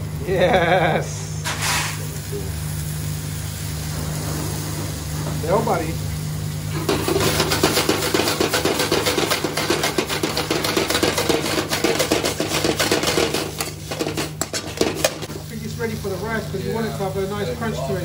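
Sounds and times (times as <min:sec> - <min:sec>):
food sizzling in a wok: 0:00.0 - 0:18.0
steady low hum: 0:00.0 - 0:18.0
metal spoon scraping a pan: 0:06.7 - 0:15.3.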